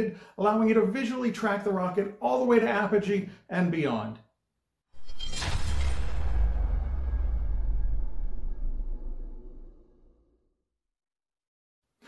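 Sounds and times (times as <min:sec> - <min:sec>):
deep cinematic rumble: 0:05.0 - 0:10.3.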